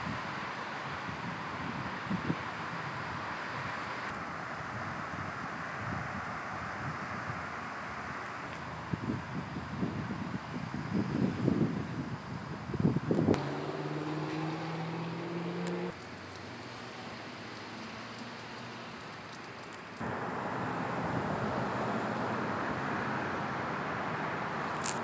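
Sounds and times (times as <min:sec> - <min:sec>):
outdoor noise: 0:00.0 - 0:25.0
wind buffeting microphone: 0:08.8 - 0:16.0
car engine hum: 0:13.1 - 0:25.0.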